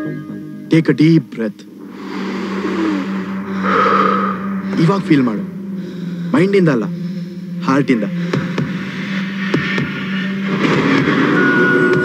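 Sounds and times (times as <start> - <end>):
steady low hum: 1.5 - 9.4
whoosh like rushing wind: 1.7 - 6.4.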